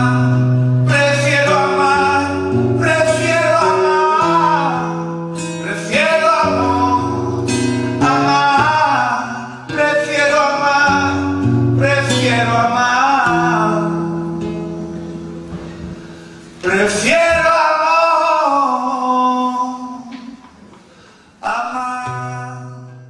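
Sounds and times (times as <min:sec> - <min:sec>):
man singing a ballad: 0:00.0 - 0:16.0, 0:16.6 - 0:20.5, 0:21.4 - 0:23.0
classical guitar chords: 0:00.0 - 0:20.8.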